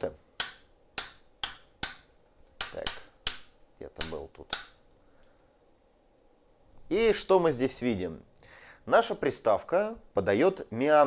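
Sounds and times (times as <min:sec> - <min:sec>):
rotary switch detent clicks: 0:02.6 - 0:04.8.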